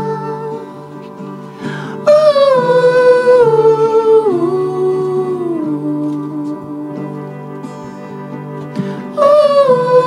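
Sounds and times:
sustained electronic chords: 0:00.0 - 0:10.0
wordless sung melody: 0:00.0 - 0:10.0.

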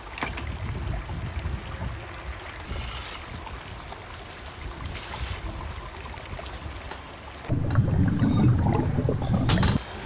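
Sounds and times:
muffled underwater rush: 0:07.5 - 0:09.8.

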